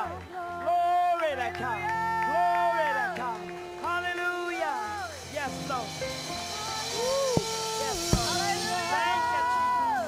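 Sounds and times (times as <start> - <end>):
cymbal wash: 4.8 - 10.0
sharp drum hit: 5.2 - 9.0.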